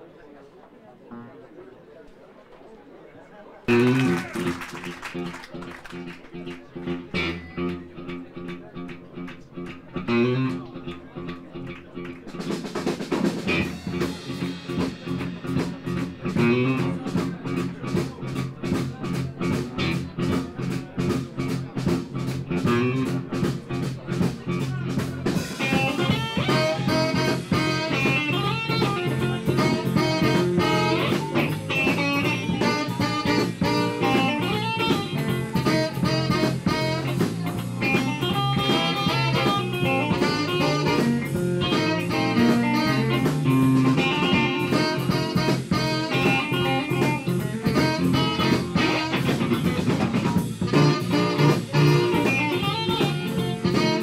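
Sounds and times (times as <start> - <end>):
blues band playing: 3.7 - 54.0
lead guitar line: 3.7 - 54.0
steady drum beat: 3.7 - 54.0.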